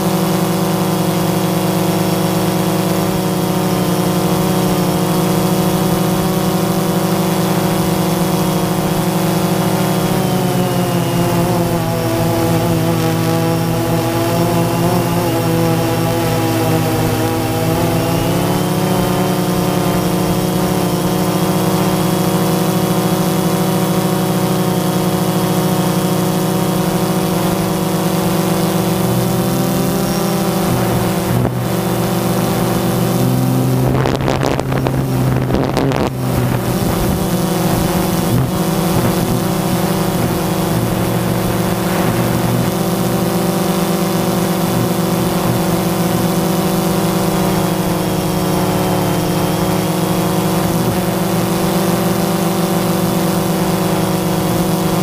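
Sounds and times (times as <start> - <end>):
drone propellers humming: 0.0 - 55.0.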